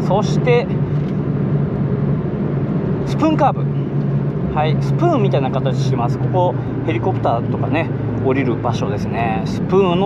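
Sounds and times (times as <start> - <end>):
car engine running steadily: 0.0 - 10.0.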